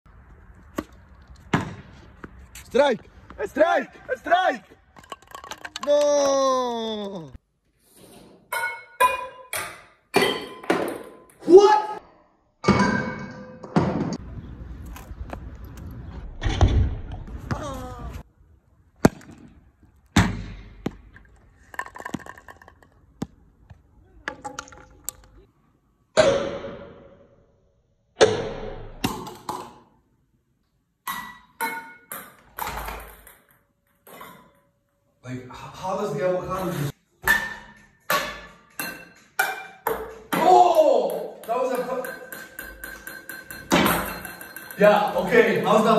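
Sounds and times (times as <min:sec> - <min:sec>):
ping-pong balls bouncing off objects: 0:08.5 - 0:11.4, 0:20.2 - 0:23.4, 0:31.0 - 0:34.7, 0:37.2 - 0:45.9.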